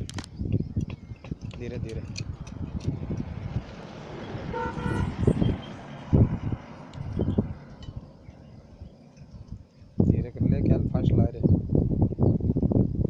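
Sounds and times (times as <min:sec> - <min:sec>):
dull low thumps: 0:00.0 - 0:03.8, 0:04.5 - 0:11.0
short horn-like tone: 0:04.5 - 0:05.8.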